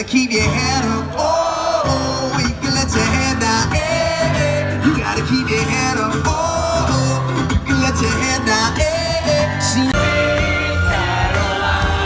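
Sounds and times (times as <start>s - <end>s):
live band playing: 0.2s - 12.0s.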